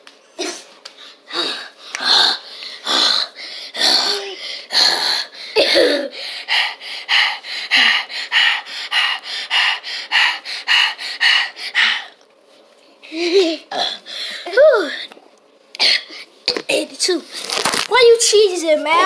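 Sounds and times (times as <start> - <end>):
person panting hard: 1.0 - 12.2.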